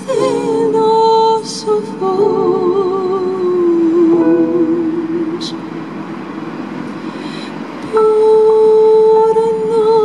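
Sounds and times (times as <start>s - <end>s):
electric keyboard accompaniment: 0.0s - 10.0s
singer breathing: 7.0s - 7.7s.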